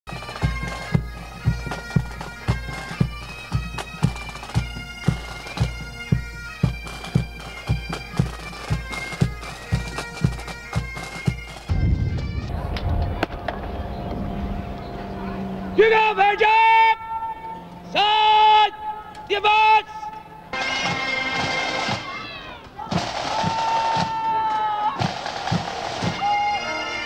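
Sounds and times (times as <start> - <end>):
bagpipes playing: 0.1 - 12.6, 19.9 - 22.2, 25.3 - 27.0
bass drum beating: 11.7 - 13.6
low rumbling noise: 11.7 - 16.4.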